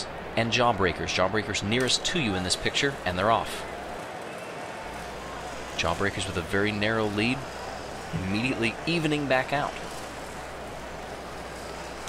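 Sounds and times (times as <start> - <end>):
marbles rolling on plastic track: 1.4 - 12.0.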